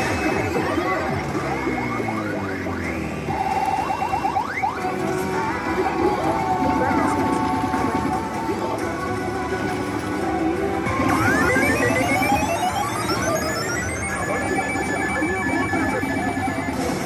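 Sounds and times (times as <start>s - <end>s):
slot machine electronic music: 0.0s - 8.3s, 10.8s - 17.0s
rising sweep of tones: 11.1s - 16.8s
held ringing tone: 11.1s - 16.9s.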